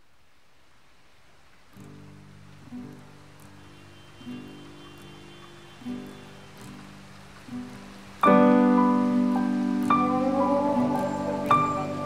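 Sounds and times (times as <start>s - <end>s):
faint hiss: 0.0s - 12.0s
soft sustained chords: 2.4s - 12.0s.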